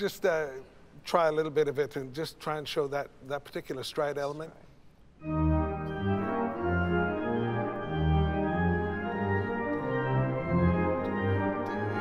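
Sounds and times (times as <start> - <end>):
pipe organ playing: 5.2 - 12.0.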